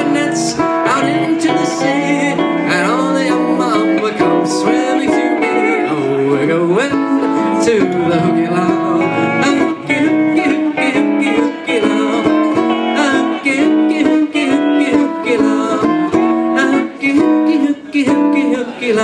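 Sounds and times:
pedal steel guitar melody: 0:00.0 - 0:19.0
ukulele strumming: 0:00.0 - 0:19.0.

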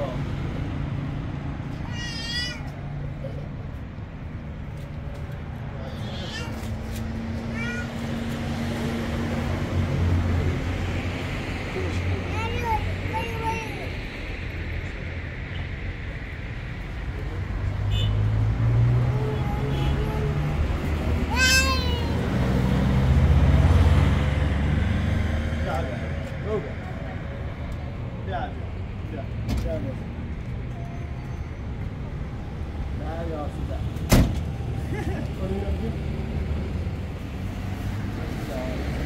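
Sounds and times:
vehicle engine rumble: 0:00.0 - 0:39.0.

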